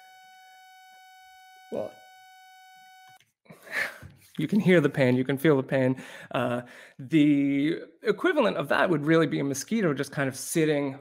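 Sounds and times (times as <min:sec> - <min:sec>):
synthesized mosquito buzz tone: 0:00.0 - 0:03.2.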